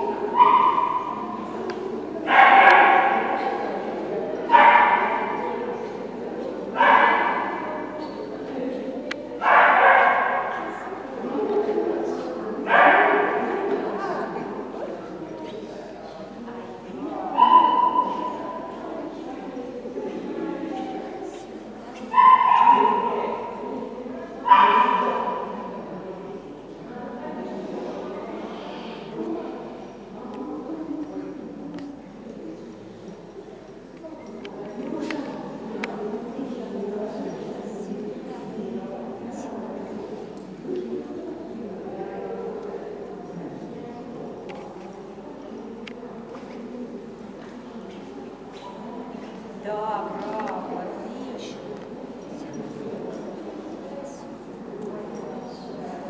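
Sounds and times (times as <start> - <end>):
dog barking in a large hall: 0.0 - 15.4, 16.1 - 31.9
murmur of indistinct voices: 0.0 - 56.0.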